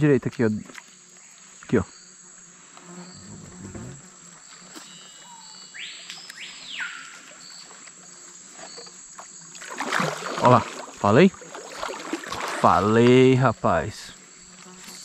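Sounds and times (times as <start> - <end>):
high-pitched insect buzz: 0.4 - 15.0.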